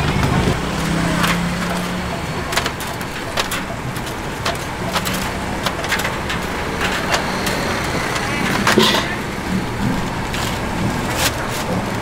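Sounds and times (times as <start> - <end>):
murmur of voices: 0.0 - 12.0
traffic: 0.0 - 12.0.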